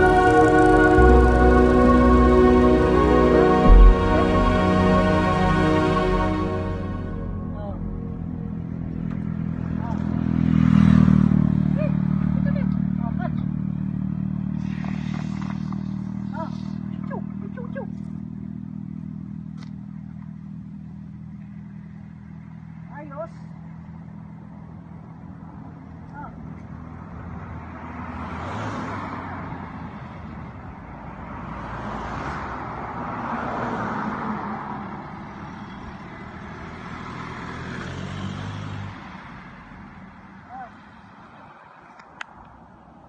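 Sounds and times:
vehicles driving past: 0.0 - 43.0.

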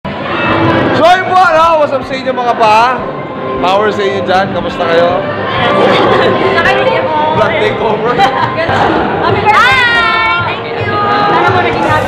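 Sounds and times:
busy room noise: 0.0 - 12.0.

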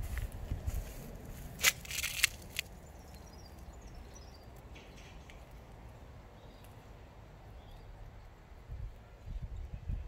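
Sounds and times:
footsteps on dry grass: 0.0 - 2.8
sharp crackles: 1.6 - 2.7.

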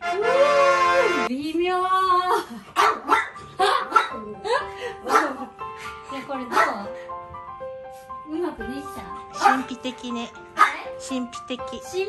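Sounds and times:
background music: 0.0 - 12.0
small dog barking: 2.8 - 4.2, 5.1 - 5.4, 6.5 - 6.8, 9.4 - 9.6, 10.6 - 10.8.

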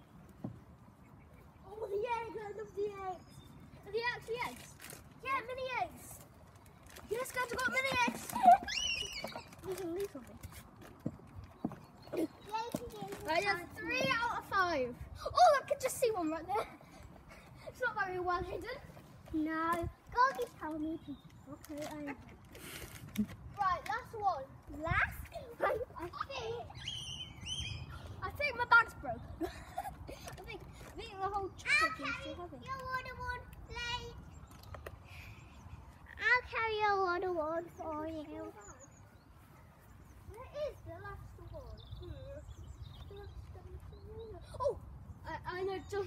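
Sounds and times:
bag of sweets rattling: 6.5 - 10.6
child laughing: 7.6 - 9.8, 29.3 - 30.6
child's high rising squeal: 8.4 - 9.6.

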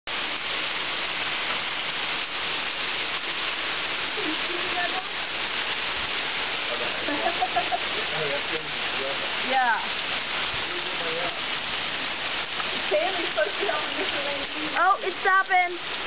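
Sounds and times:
heavy hail pelting: 0.1 - 16.0.

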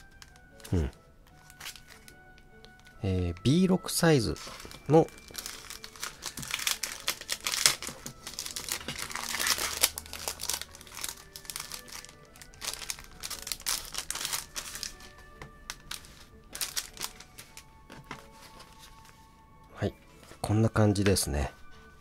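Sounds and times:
plastic bag crinkling: 0.0 - 2.2, 3.1 - 17.7.

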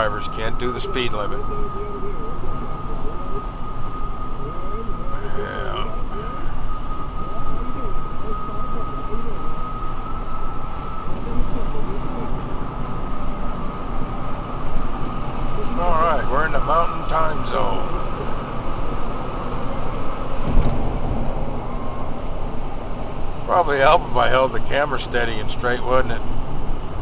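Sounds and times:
road and engine noise in cab: 0.0 - 27.0
thin high whine: 0.0 - 27.0.

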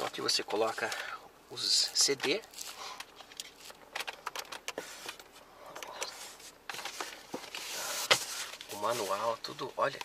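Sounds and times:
rustling of items: 1.7 - 10.0
clicks and knocks in glove box: 3.8 - 6.1.

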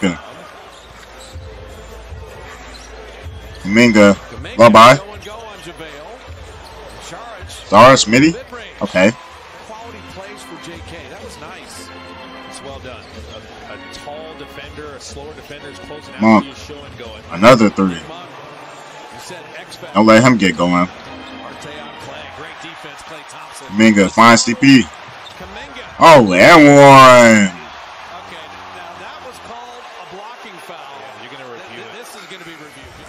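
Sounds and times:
arena crowd noise: 0.0 - 33.0
commentator talking: 3.6 - 5.9, 7.5 - 9.2, 9.8 - 18.4, 19.2 - 24.9, 25.5 - 32.8.

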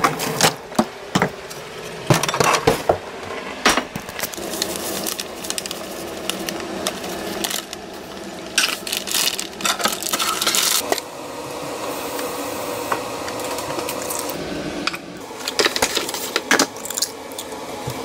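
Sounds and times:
bag of dry mix rustling: 3.9 - 10.8.

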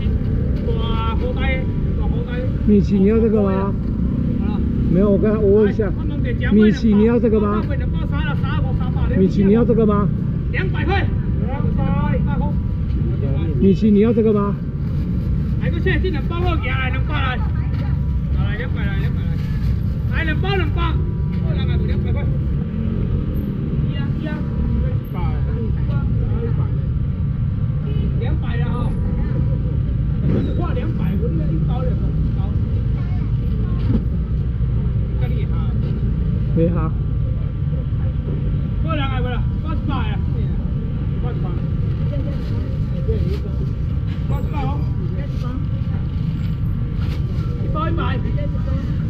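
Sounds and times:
voices talking: 0.0 - 14.7.

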